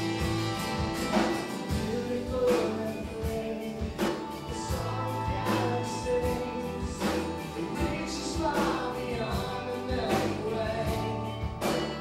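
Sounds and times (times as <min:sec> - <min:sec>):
electric guitar: 0:00.0 - 0:12.0
keyboard: 0:00.0 - 0:12.0
strummed acoustic guitars: 0:00.0 - 0:12.0
voices singing together: 0:01.5 - 0:12.0.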